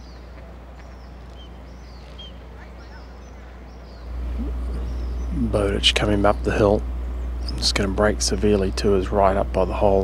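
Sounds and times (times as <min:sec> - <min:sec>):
faint bird calls: 0:00.0 - 0:09.0
steady low rumble: 0:00.0 - 0:10.0.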